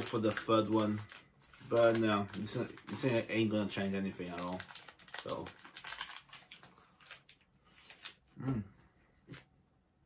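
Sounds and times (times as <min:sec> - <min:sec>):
plastic wrapper crinkling: 0:00.0 - 0:08.4
person humming: 0:08.4 - 0:08.8.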